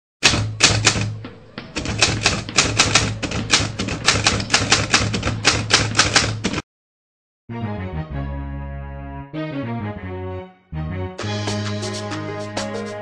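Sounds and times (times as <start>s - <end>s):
typewriter keystroke clicks: 0.2s - 6.6s.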